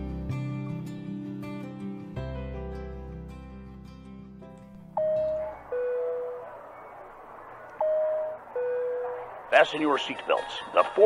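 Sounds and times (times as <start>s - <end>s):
guitar-led intro music: 0.0s - 10.4s
airliner cabin chime: 5.0s - 10.9s.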